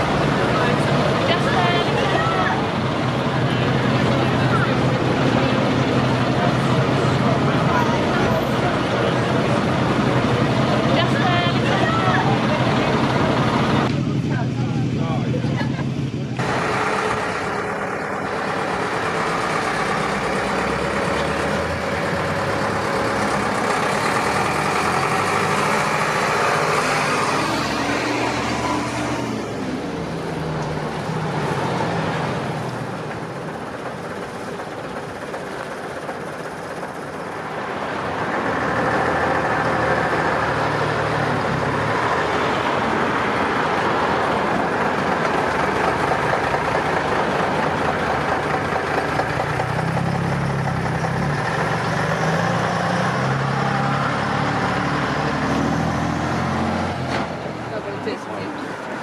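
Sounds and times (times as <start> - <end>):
bus diesel engine running: 0.0 - 59.0.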